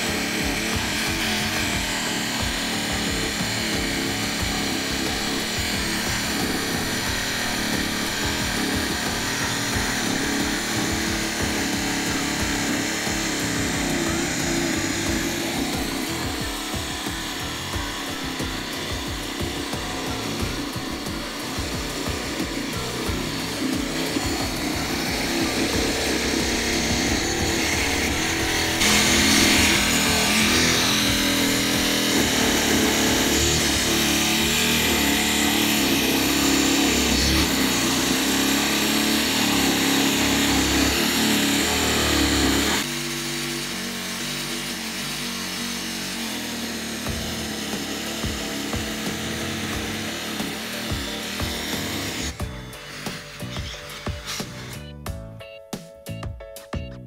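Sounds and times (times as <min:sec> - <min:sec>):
scroll saw buzzing: 0:00.0 - 0:55.1.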